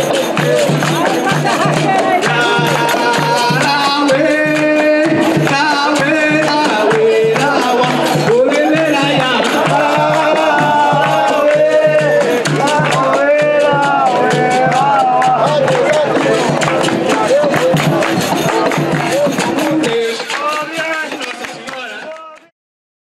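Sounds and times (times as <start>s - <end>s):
voices singing: 0.0s - 21.2s
hand drum beating: 0.0s - 21.6s
fast percussive ticks: 0.0s - 22.5s.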